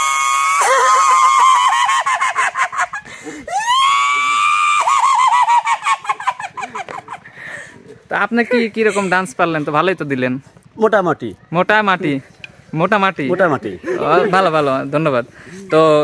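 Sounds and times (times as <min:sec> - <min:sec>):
high-pitched shrieking laughter: 0:00.0 - 0:07.6.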